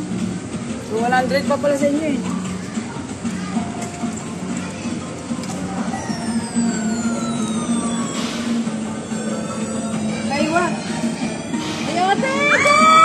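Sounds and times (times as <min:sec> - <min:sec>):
steady hum: 0:00.0 - 0:12.9
arcade electronic music: 0:03.8 - 0:13.0
long falling tone: 0:05.9 - 0:13.0.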